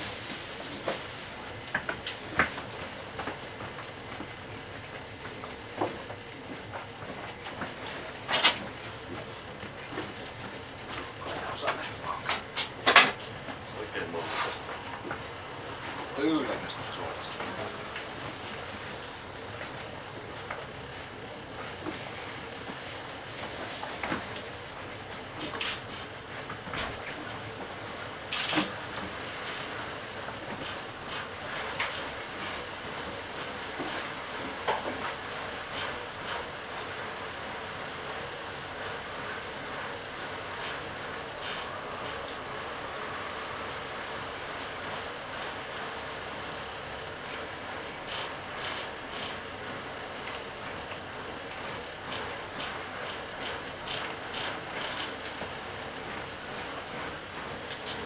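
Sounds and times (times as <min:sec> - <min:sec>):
thin high whine: 0:07.5 - 0:58.0.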